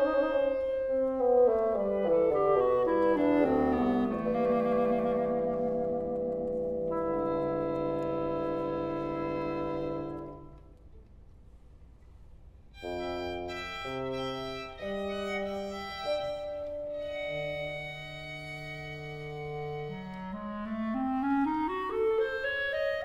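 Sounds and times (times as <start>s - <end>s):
separate instrument notes: 0.0s - 23.0s.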